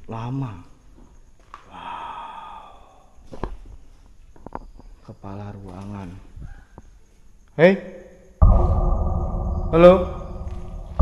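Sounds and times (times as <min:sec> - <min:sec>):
sharp knock: 0:08.4 - 0:11.0.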